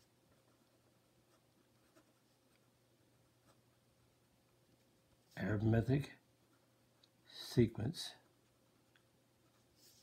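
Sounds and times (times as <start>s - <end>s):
pen scratching on paper: 0.0s - 2.7s.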